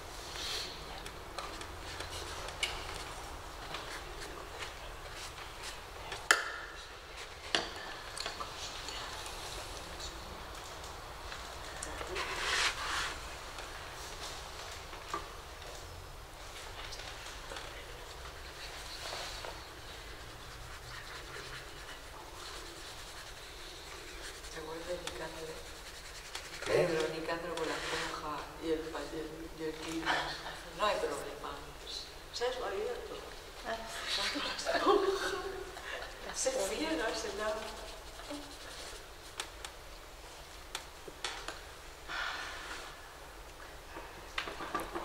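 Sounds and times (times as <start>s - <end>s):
person speaking: 20.9s - 31.6s.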